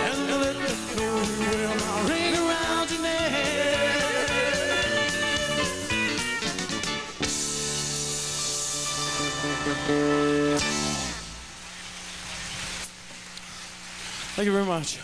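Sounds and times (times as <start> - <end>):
rock band playing: 0.0 - 11.6.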